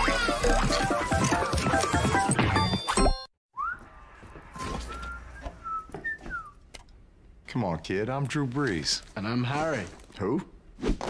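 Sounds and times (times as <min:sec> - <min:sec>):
person whistling: 0:03.6 - 0:03.9, 0:04.6 - 0:06.6.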